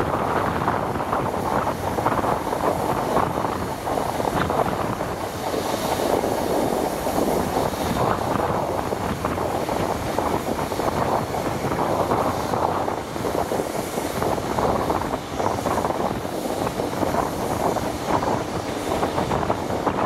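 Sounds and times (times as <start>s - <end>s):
train rolling on rails: 0.0s - 20.0s
wind rushing over microphone: 0.0s - 20.0s.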